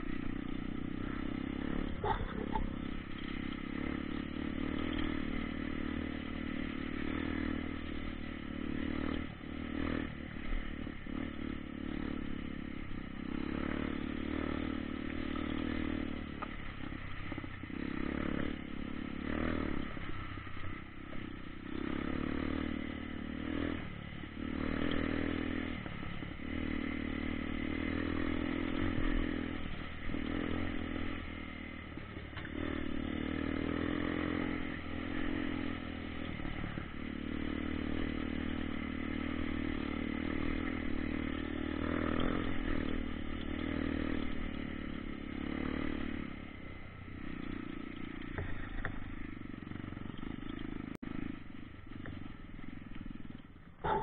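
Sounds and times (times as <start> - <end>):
dirt bike engine revving: 0.0 - 54.0.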